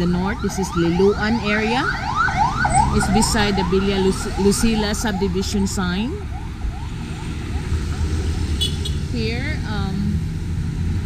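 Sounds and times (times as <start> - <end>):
van engine rumble: 0.0 - 11.0
motorcycle going by: 0.3 - 11.0.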